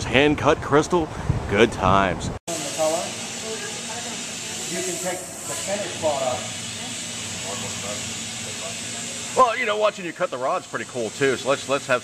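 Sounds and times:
torch flame hissing: 2.5s - 12.0s.

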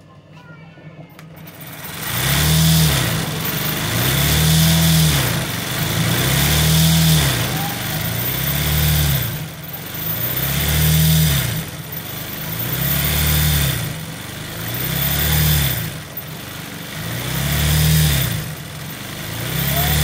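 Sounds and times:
sewing machine motor: 1.4s - 20.0s.

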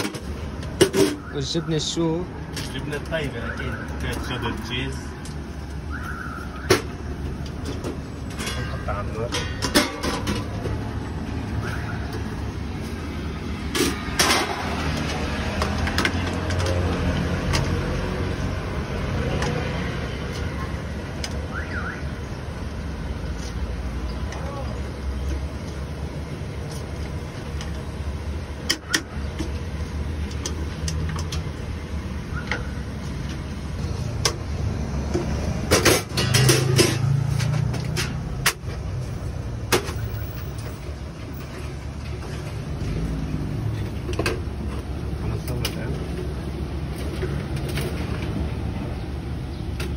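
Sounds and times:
street traffic rumble: 0.0s - 49.9s
metal utensils clinking on pans: 7.7s - 10.7s, 35.7s - 38.6s.

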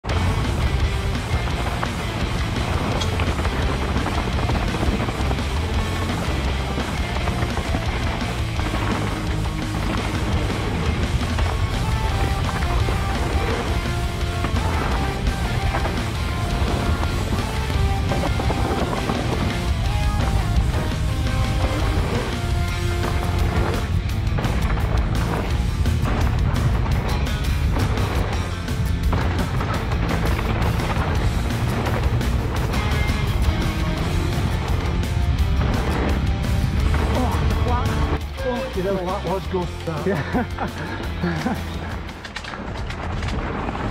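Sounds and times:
rock music: 0.0s - 42.5s.

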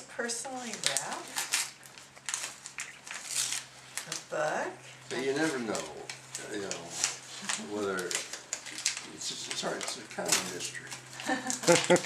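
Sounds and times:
wrapping paper tearing and crinkling: 0.5s - 12.0s.

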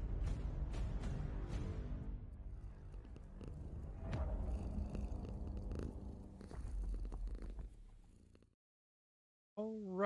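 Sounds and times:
cat purring: 2.4s - 8.6s.

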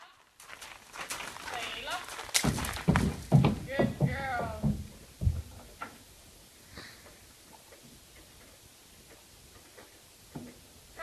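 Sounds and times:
person talking: 1.4s - 2.2s, 3.6s - 4.8s.

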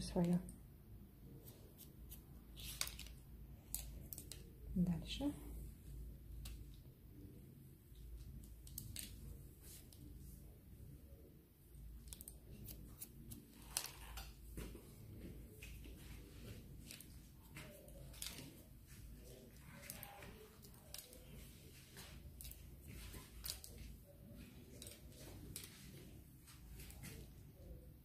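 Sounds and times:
comb handling: 1.4s - 4.6s, 7.9s - 10.4s, 11.9s - 27.7s.

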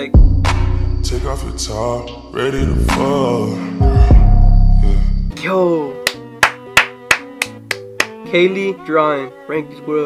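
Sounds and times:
background music: 0.0s - 10.0s
person clapping hands: 6.0s - 8.2s.

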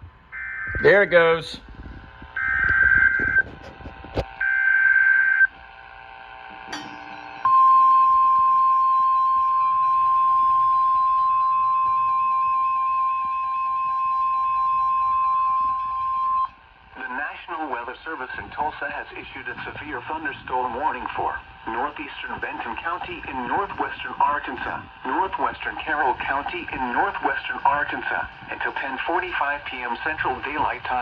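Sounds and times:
screechy digital data bursts: 2.4s - 3.5s.

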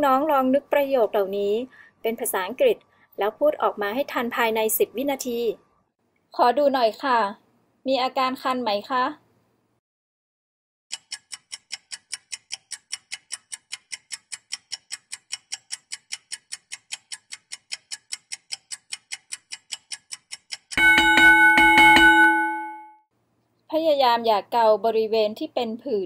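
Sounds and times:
timer ticking: 10.9s - 22.9s
bell ringing: 20.8s - 23.0s.

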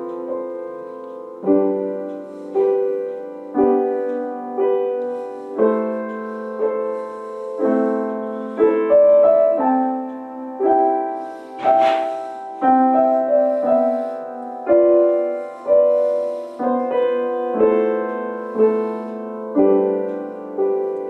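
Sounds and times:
upright piano chords: 0.0s - 21.0s.

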